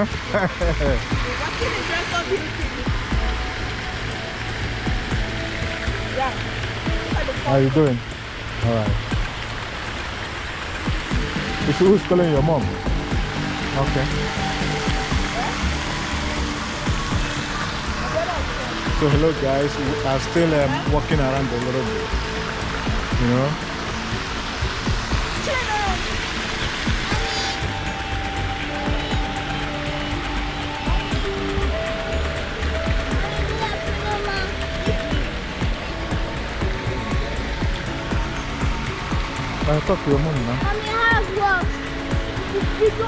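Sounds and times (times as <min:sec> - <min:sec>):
fountain jets splashing into pool: 0:00.0 - 0:43.0
music: 0:00.0 - 0:43.0.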